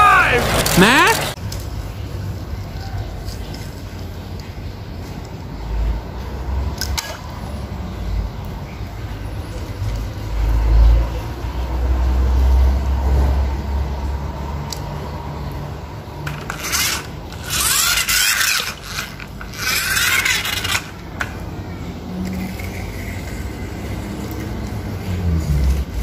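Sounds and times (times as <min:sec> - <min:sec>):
toy cars rumbling on tile: 0:00.0 - 0:02.0, 0:02.6 - 0:26.0
toy cars scraping on tile: 0:16.2 - 0:26.0.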